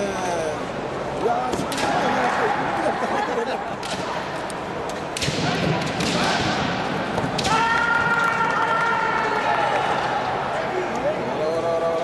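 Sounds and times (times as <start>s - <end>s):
bamboo swords striking: 1.5s - 2.0s, 5.1s - 8.0s.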